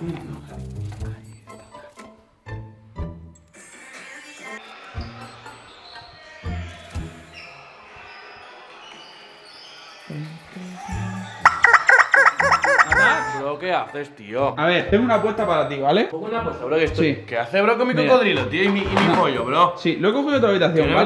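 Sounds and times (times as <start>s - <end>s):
rubber chicken toy squealing: 11.4s - 13.4s.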